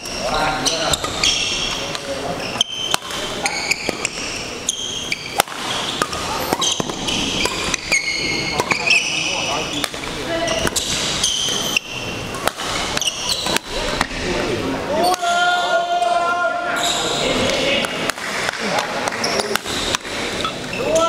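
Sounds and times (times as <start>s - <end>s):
sneakers squeaking on court: 0.0s - 13.8s
voices echoing in hall: 0.0s - 21.0s
racket striking shuttlecock: 2.7s - 4.2s, 5.2s - 7.8s, 9.8s - 14.1s.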